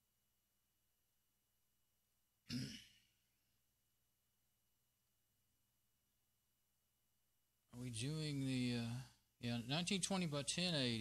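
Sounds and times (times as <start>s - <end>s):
man clearing his throat: 2.5s - 3.1s.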